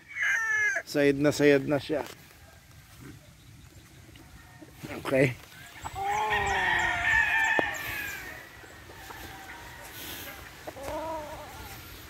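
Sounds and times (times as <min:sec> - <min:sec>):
rooster crowing: 0:00.0 - 0:00.8, 0:06.0 - 0:11.8.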